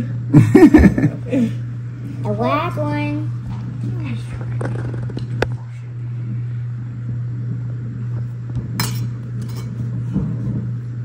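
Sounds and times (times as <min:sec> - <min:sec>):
steady low hum: 0:00.0 - 0:11.0
metal cutter clinking on plate: 0:08.8 - 0:09.8.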